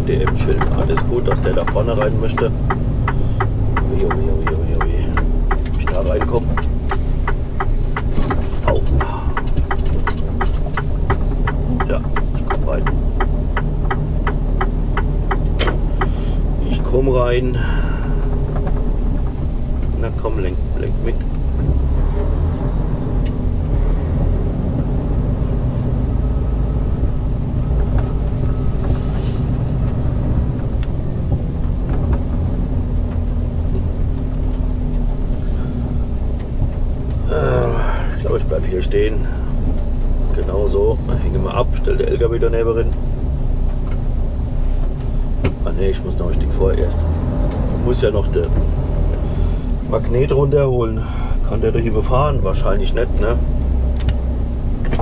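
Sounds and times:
turn signal relay ticking: 0.0 - 21.9, 23.0 - 23.8, 24.6 - 55.0
diesel engine rumbling: 0.0 - 55.0.

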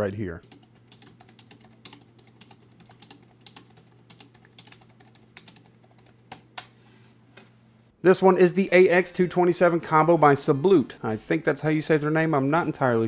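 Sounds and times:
soft keyboard typing: 0.2 - 6.8.

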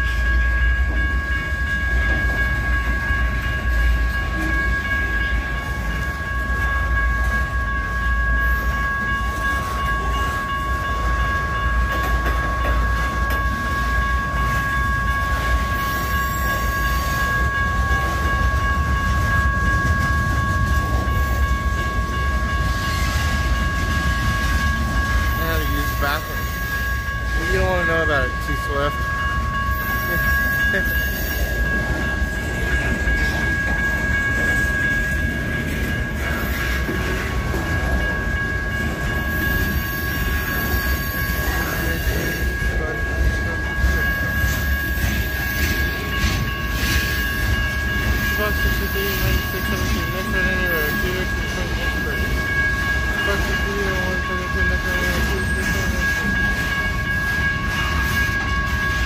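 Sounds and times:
crossing warning bell ringing: 0.0 - 59.0
freight train rumbling: 0.0 - 59.0.

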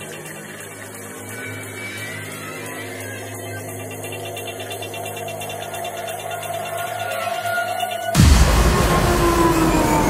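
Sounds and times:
drum and bass music: 8.2 - 10.0
rising synth tone: 8.2 - 10.0.

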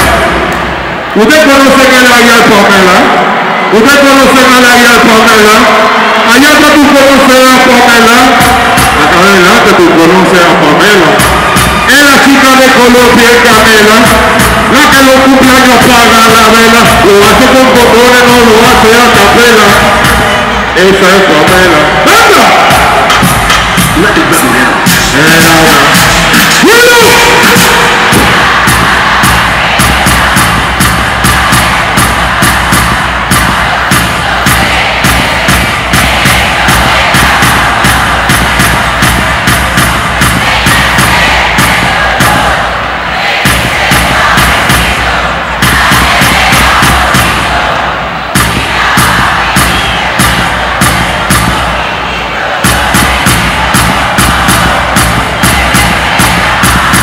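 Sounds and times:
crowd cheering and shouting: 0.0 - 57.0
live reggae music: 10.9 - 57.0.

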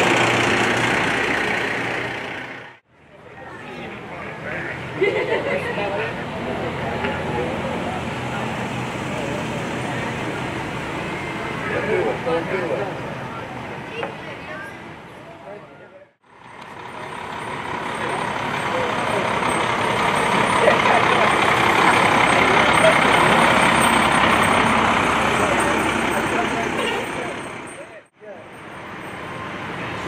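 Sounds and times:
fire engine driving past: 0.0 - 14.2, 16.2 - 30.0.

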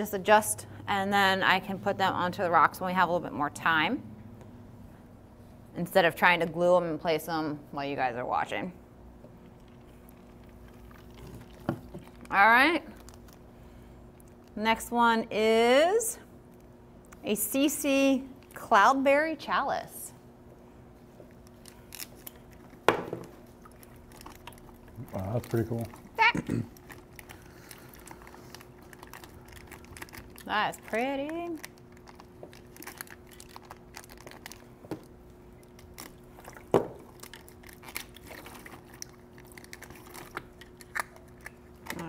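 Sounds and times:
faint steady hum: 0.0 - 42.0
plastic bag crinkling: 9.8 - 13.4, 21.4 - 42.0.

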